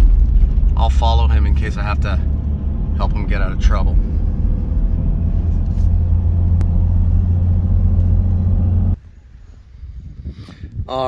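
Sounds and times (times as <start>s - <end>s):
diesel engine and road noise: 0.0s - 9.4s.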